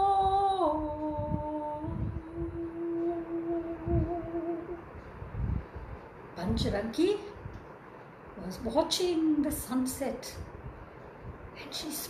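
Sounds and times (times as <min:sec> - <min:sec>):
woman humming: 0:00.0 - 0:04.8.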